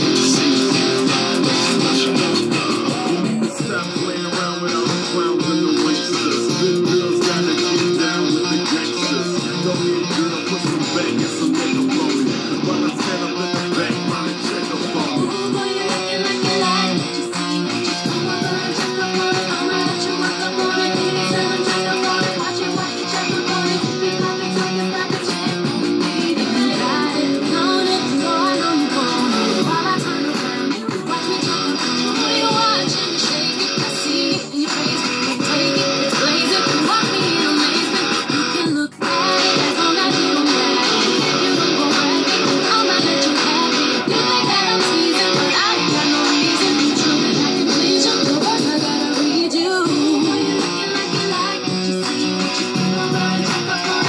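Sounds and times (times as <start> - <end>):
heavy metal electric guitar: 0.0 - 54.0.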